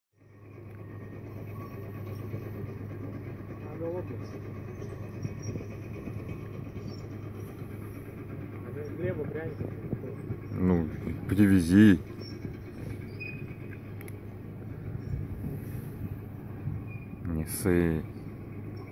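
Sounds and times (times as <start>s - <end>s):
vehicle engine idling: 0.4s - 18.9s.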